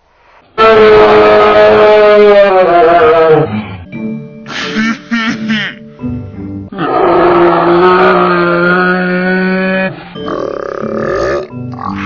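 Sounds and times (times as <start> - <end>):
background music: 1.5 - 12.0.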